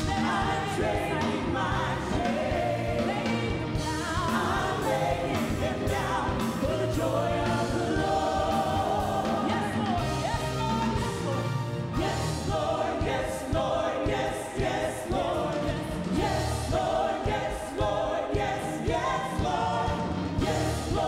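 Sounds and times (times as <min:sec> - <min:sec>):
group of singers singing: 0:00.0 - 0:21.0.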